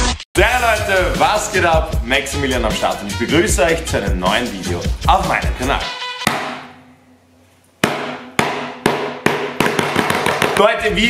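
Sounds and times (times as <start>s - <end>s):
hand slapping desk: 6.3s - 6.7s, 7.8s - 10.7s.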